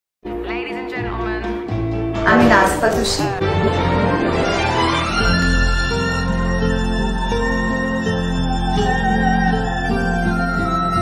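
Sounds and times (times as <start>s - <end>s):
instrumental background music: 0.2s - 11.0s.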